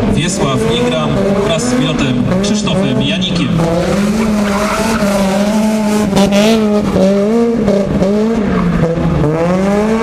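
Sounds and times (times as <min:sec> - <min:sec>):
car engine revving hard: 0:00.0 - 0:10.0.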